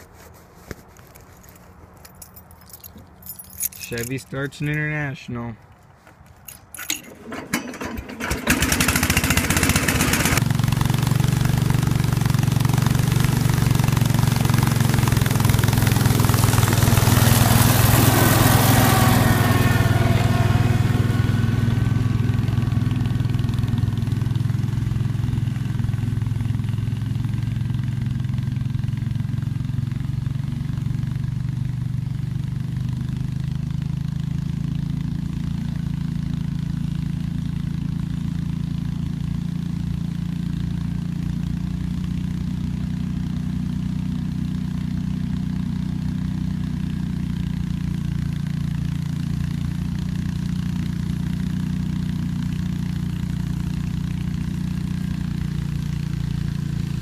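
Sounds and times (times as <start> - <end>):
tractor engine running: 0.0 - 57.0
engine cranking: 6.4 - 10.5.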